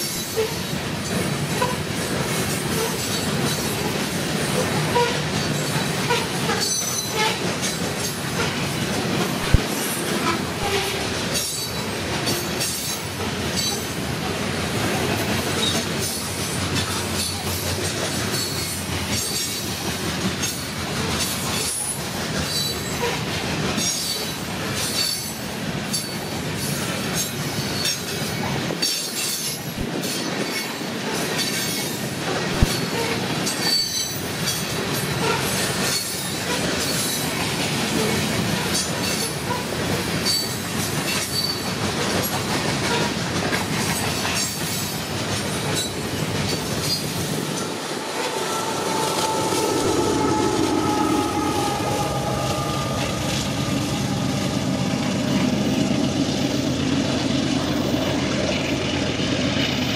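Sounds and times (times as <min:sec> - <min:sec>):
train wheels rumbling on rail: 0:00.0 - 0:59.9.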